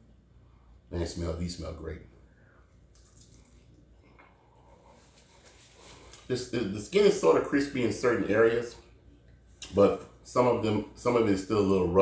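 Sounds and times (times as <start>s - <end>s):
soft wet chewing: 2.9s - 6.3s.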